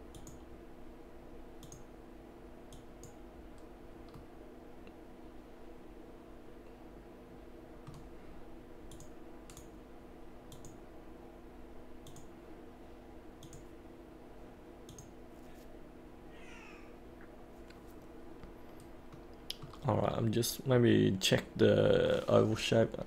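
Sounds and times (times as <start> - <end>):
low background hum: 0.0 - 23.0
computer mouse clicks: 0.1 - 0.4, 1.6 - 1.9, 7.8 - 8.1, 8.9 - 9.7, 10.5 - 10.8, 12.0 - 12.3, 13.4 - 13.7, 14.9 - 15.1.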